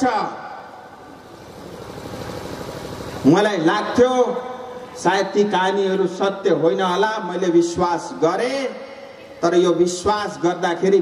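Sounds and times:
engine rumble with rapid flutter: 1.0s - 3.6s.

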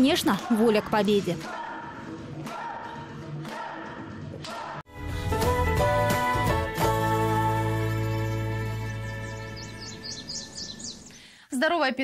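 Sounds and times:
bird-like chirps: 8.1s - 11.2s.

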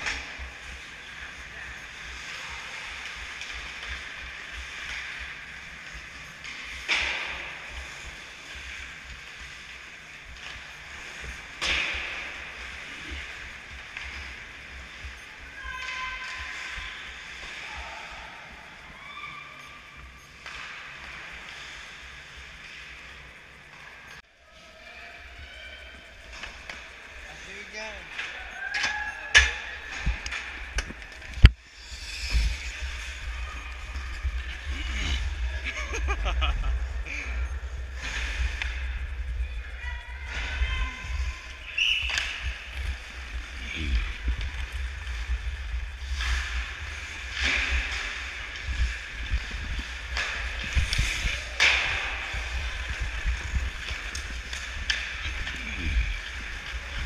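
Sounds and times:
hockey sticks and puck clacking: 0.0s - 17.6s, 41.6s - 57.0s
ice skates scraping: 0.0s - 28.6s, 29.6s - 39.6s, 40.3s - 57.0s.

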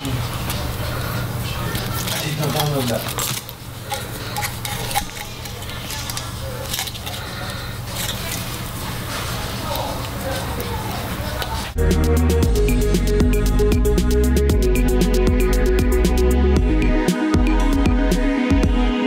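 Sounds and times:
indistinct background voices: 0.0s - 11.8s
knife and vinyl film clicks: 1.7s - 8.6s
loud electronic music: 11.8s - 19.0s.

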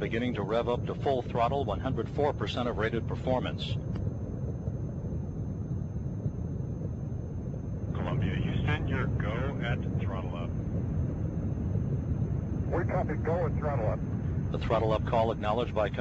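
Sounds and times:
rocket engines rumbling: 0.0s - 16.0s
indistinct radio voice: 8.0s - 10.5s, 12.7s - 16.0s.

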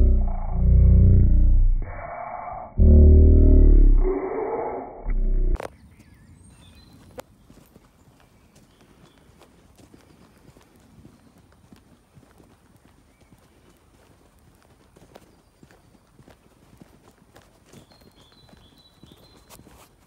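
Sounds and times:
faint footsteps on dirt path: 5.6s - 20.0s.

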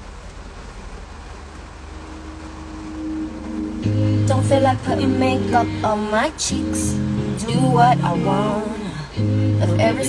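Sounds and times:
car cabin rumble: 0.0s - 9.0s
music with heavy bass: 2.3s - 10.0s.

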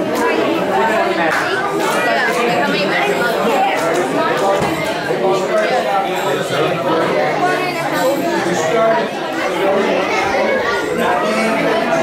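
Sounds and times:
crowd hubbub in a gym: 0.0s - 12.0s.

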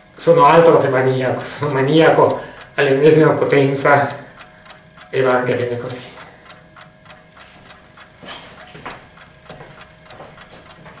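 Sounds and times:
faint quick regular ticking: 1.4s - 11.0s.

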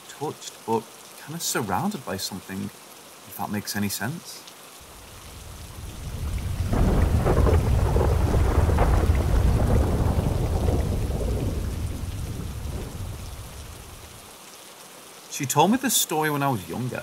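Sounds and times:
steady rain: 0.0s - 17.0s
rolling thunder: 5.1s - 14.1s.

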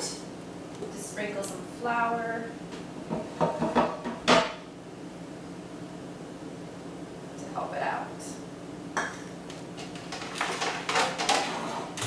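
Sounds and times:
kitchenware knocking on counter: 3.1s - 4.6s.

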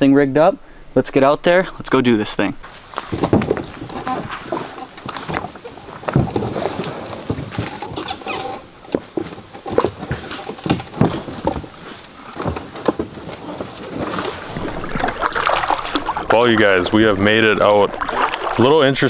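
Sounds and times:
grass and brush rustling: 2.2s - 19.0s
footsteps in grass: 2.6s - 7.8s
canoe hull scraping and knocking: 2.6s - 19.0s.

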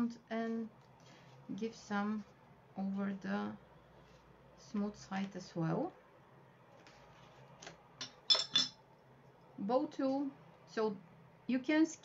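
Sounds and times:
metal tools clinking: 8.0s - 8.8s.

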